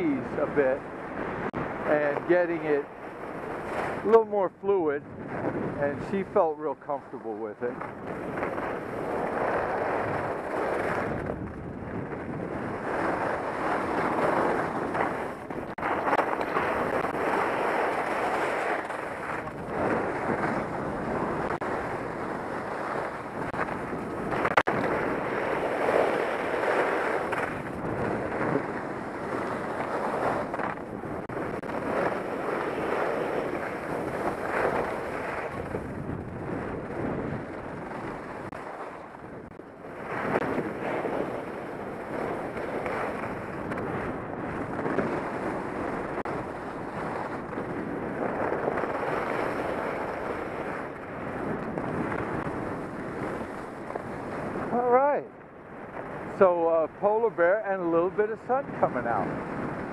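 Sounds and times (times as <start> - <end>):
skis scraping over snow: 0.0 - 55.1, 56.2 - 59.9
wind on microphone: 0.0 - 59.9.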